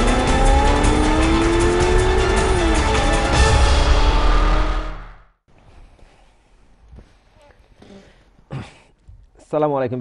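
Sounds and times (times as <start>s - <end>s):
car sound effects: 0.0s - 5.3s
soundtrack music: 0.0s - 5.3s.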